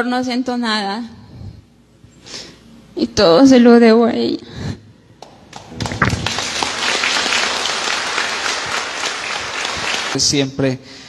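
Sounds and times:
crowd applauding: 0:05.2 - 0:10.2.

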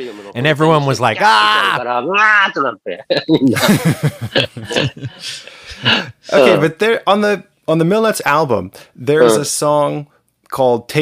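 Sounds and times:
breathy laughter: 0:02.8 - 0:06.3.

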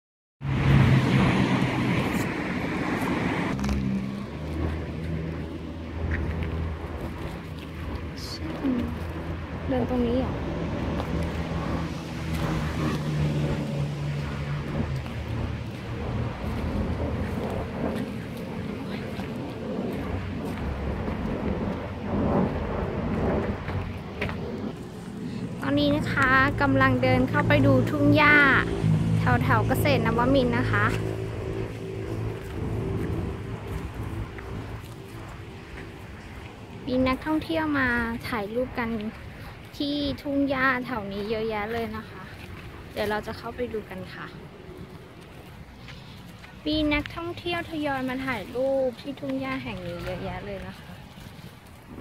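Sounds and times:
vehicle engine hum: 0:00.4 - 0:52.0
wind buffeting microphone: 0:00.4 - 0:52.0.

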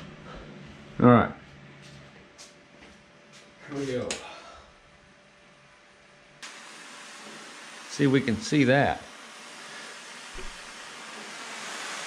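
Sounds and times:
torch hissing: 0:06.4 - 0:12.0.

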